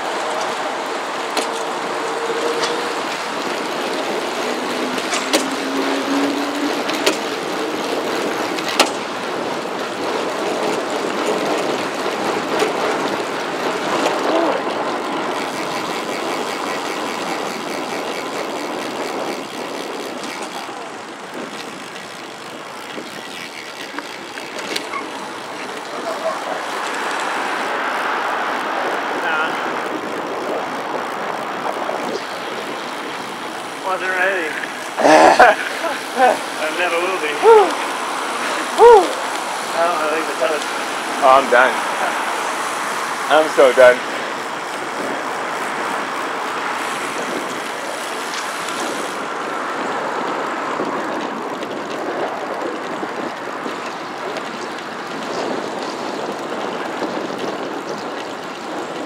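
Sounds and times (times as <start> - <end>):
road traffic passing: 0.0 - 59.0
wind rushing over camera: 0.0 - 59.0.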